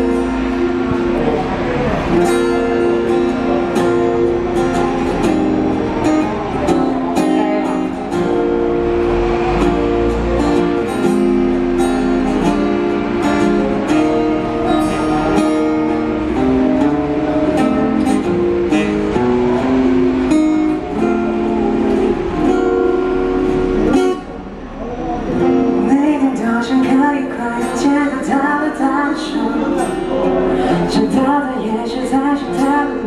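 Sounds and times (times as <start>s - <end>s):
acoustic guitar strumming chords: 0.0s - 33.0s.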